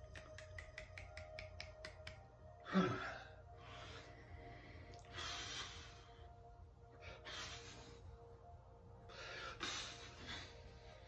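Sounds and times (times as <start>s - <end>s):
finger snaps: 0.0s - 2.6s.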